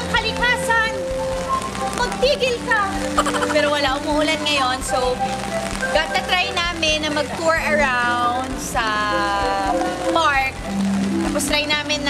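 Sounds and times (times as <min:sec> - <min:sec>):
music: 0:00.0 - 0:12.0
rain on umbrella and pavement: 0:00.0 - 0:12.0.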